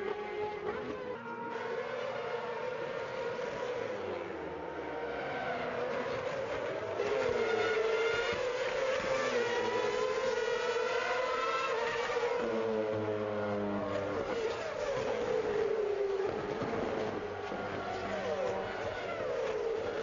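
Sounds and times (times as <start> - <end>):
racing car engines at high revs: 0.0 - 20.0.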